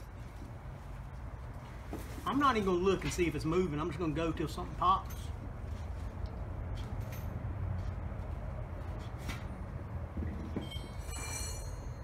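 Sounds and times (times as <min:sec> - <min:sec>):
high metallic squeal: 0:10.6 - 0:12.0.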